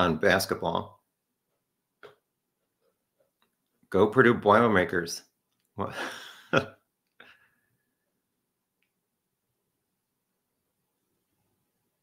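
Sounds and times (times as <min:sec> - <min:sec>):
man chuckling: 0:05.8 - 0:07.4.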